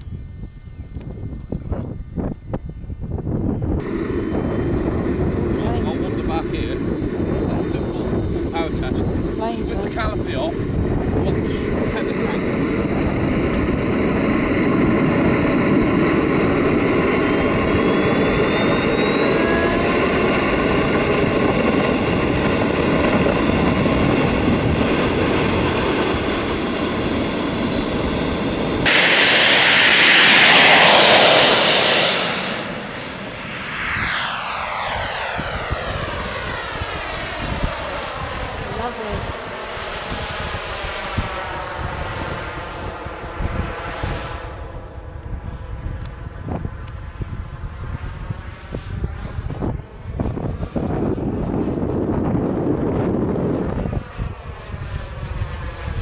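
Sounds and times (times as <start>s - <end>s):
model jet turbine whine: 0.0s - 56.0s
loud jet rush: 3.1s - 44.8s.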